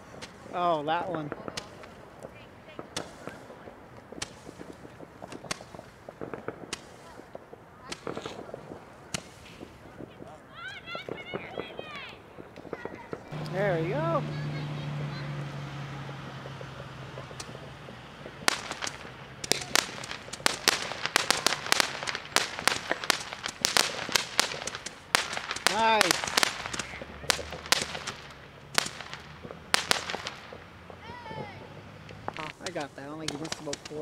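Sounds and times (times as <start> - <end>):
fireworks popping and crackling: 0.0 - 34.0.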